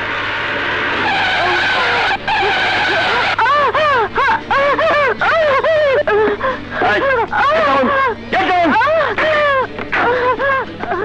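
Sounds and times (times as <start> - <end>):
car tyres skidding: 0.0 - 3.8
wailing siren-like sound: 0.0 - 3.8
vehicle noise: 0.0 - 10.8.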